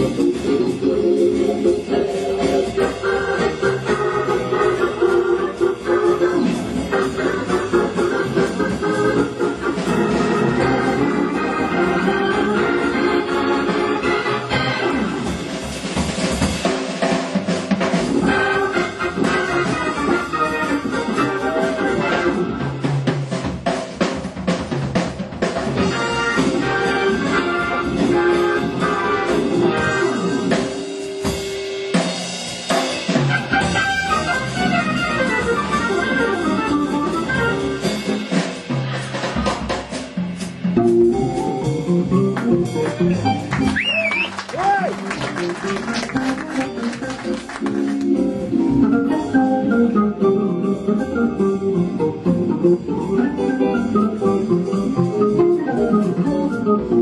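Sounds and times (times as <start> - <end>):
drum kit: 0.0 - 57.0
organ playing jazz: 0.0 - 57.0.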